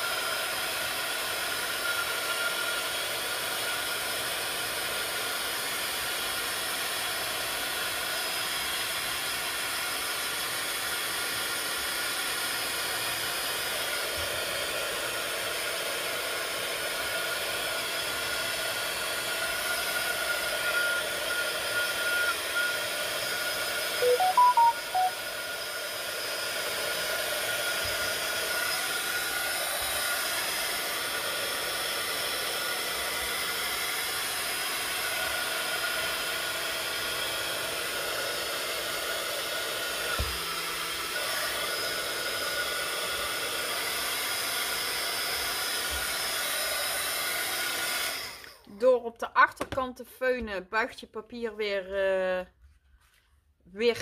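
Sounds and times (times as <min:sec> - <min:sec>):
short chime: 0:24.0 - 0:25.1.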